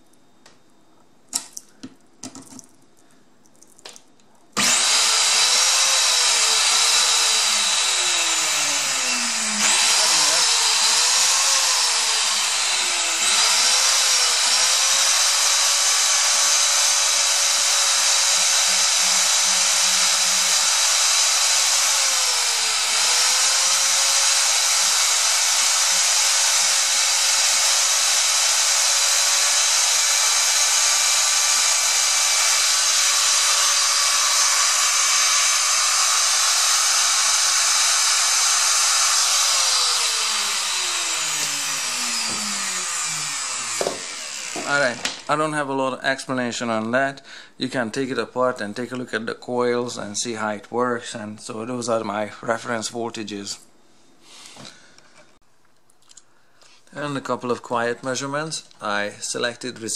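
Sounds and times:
vacuum motor whining: 4.6s - 45.3s.

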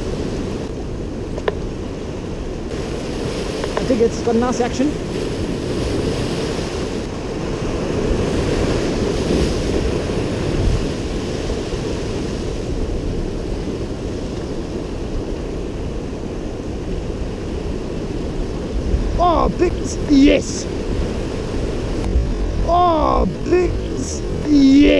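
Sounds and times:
wind on microphone: 0.0s - 24.9s
surf breaking over rocks: 2.7s - 12.9s, 17.8s - 24.9s.

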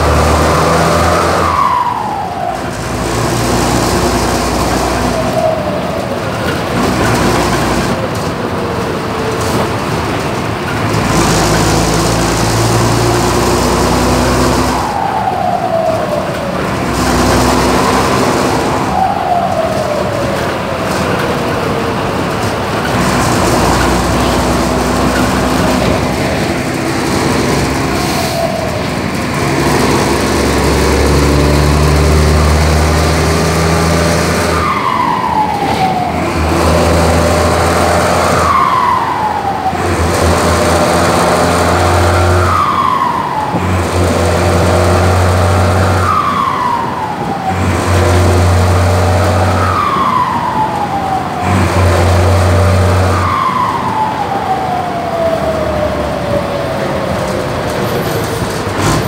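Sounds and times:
diesel engine droning: 0.0s - 59.0s.

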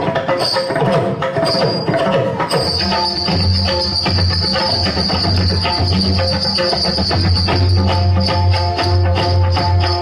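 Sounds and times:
live band playing dance music: 0.0s - 10.0s
constant high-pitched tone: 2.5s - 10.0s.

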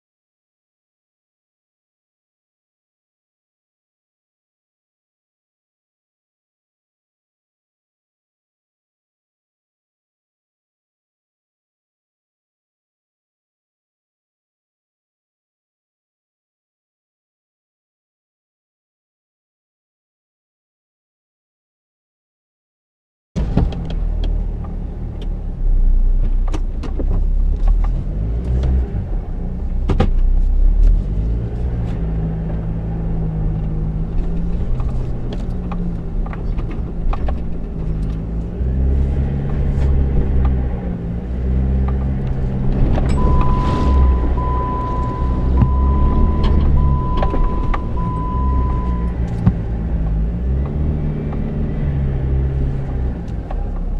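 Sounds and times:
vehicle clicks and knocks: 23.4s - 25.4s, 26.2s - 28.8s, 29.8s - 30.4s, 33.6s - 38.4s, 49.1s - 51.5s
off-road vehicle engine revving: 23.4s - 53.9s
short electronic beeps: 43.1s - 49.2s.

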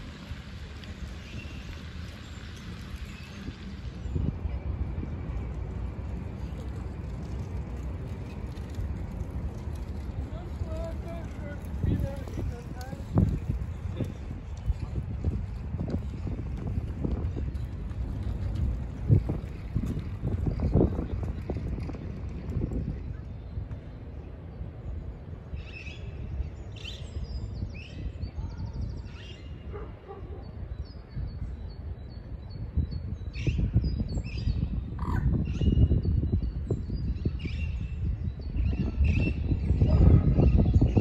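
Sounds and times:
fountain splashing: 0.0s - 3.9s
low outdoor rumble: 0.0s - 26.7s
wind buffeting microphone: 0.0s - 41.0s.

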